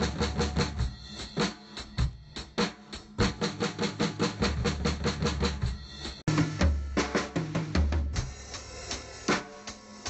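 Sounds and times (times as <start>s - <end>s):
drum kit stick strikes: 0.0s - 10.0s.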